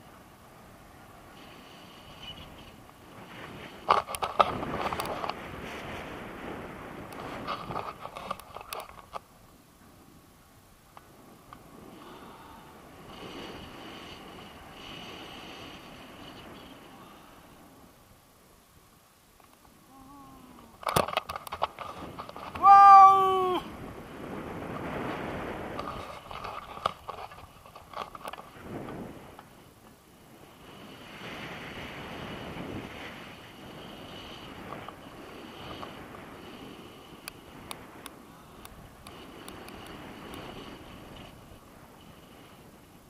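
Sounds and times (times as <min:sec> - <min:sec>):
wind on microphone: 0:00.0 - 0:09.2, 0:11.0 - 0:18.1, 0:19.7 - 0:43.0
crackle of clicks: 0:03.8 - 0:05.4, 0:07.0 - 0:09.3, 0:10.9 - 0:11.7, 0:19.4 - 0:19.8, 0:20.5 - 0:22.6, 0:25.7 - 0:30.0, 0:37.2 - 0:41.3
person high-pitched cry: 0:22.6 - 0:23.7.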